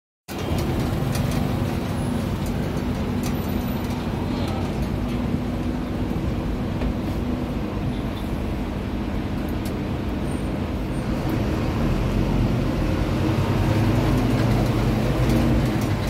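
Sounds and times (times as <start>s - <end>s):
bus engine drone: 0.3s - 16.0s
road and traffic noise: 0.3s - 16.0s.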